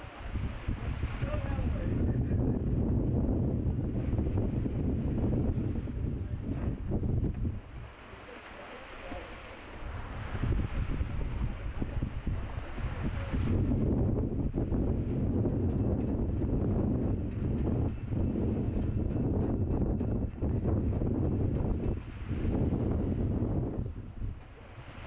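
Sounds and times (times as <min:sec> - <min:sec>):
wind buffeting microphone: 0:00.0 - 0:08.2, 0:09.7 - 0:25.0.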